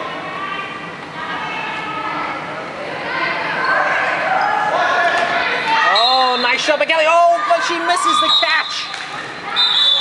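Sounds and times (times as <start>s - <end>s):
players shouting in echoing hall: 0.0s - 10.0s.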